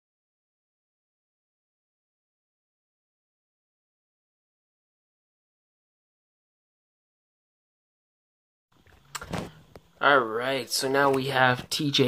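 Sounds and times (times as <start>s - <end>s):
faint room noise: 8.7s - 12.0s.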